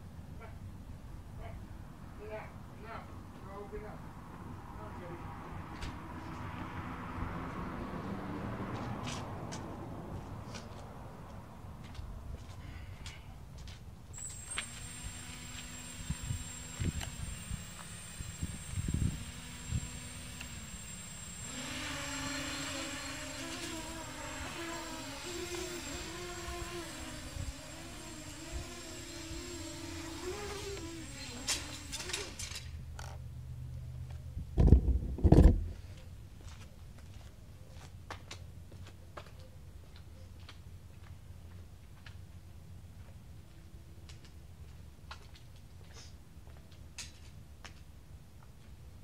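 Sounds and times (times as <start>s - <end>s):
quadcopter motors whining: 14.2s - 32.7s.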